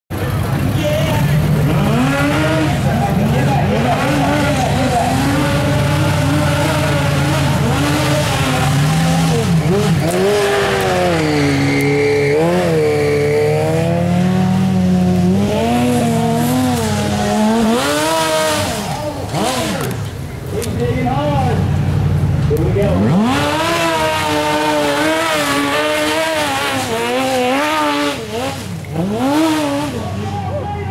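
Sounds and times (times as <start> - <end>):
buggy engine revving hard: 0.1 - 30.9.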